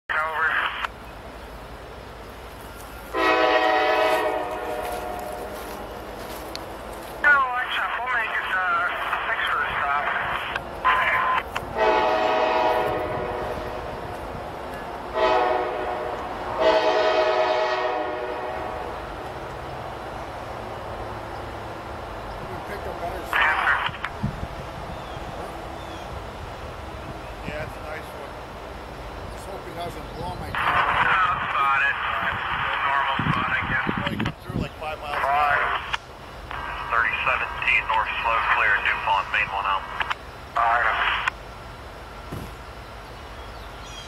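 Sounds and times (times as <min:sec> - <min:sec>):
train horn blasts: 0:03.1 - 0:06.1, 0:11.7 - 0:14.1, 0:15.1 - 0:19.1.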